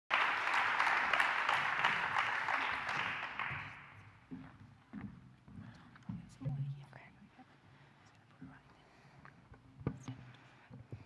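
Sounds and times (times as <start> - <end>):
audience applauding: 0.1 - 4.0.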